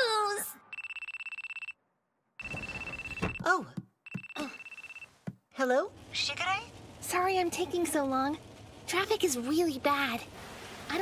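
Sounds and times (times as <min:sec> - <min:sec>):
mobile phone ringing: 0:00.7 - 0:01.8, 0:02.4 - 0:03.4, 0:04.0 - 0:05.2.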